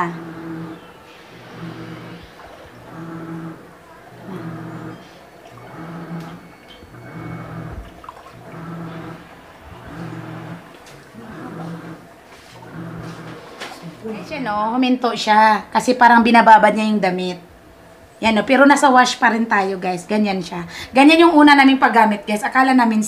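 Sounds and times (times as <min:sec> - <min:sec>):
clothes churning in water: 0:00.0 - 0:14.5
washing machine motor humming: 0:00.0 - 0:23.0.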